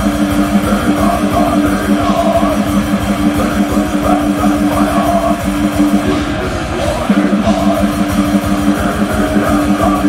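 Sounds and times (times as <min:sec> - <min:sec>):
distorted electric guitars riff: 0:00.0 - 0:10.0
fast dense drumming: 0:00.0 - 0:10.0.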